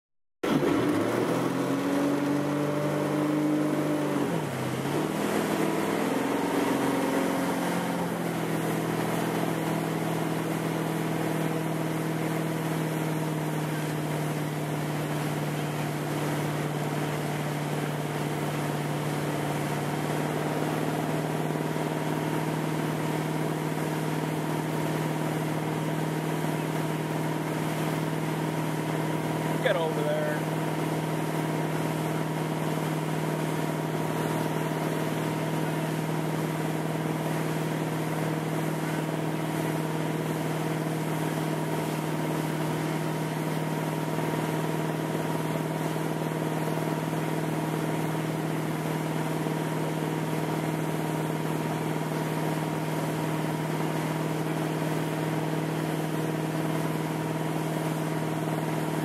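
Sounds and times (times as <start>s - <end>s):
motorboat engine accelerating: 0.4s - 59.0s
water rushing: 26.2s - 31.2s.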